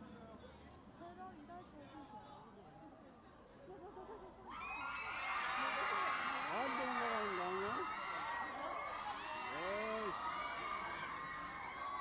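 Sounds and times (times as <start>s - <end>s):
crowd cheering and calling out: 4.7s - 12.0s.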